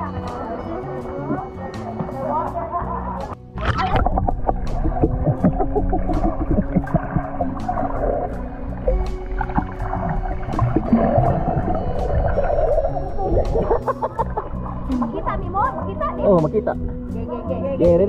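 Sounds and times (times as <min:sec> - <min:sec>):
muffled underwater rumble: 0:00.0 - 0:18.0
music track: 0:00.0 - 0:18.0.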